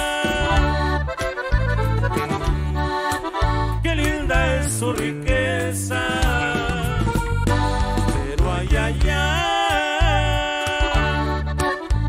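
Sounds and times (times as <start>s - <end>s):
accordion: 0.0s - 12.0s
electric bass notes: 0.0s - 12.0s
guitar strumming: 0.0s - 12.0s.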